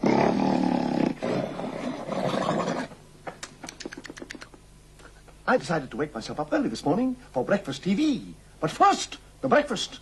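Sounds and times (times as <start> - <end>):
sharp clicks: 3.3 - 4.6.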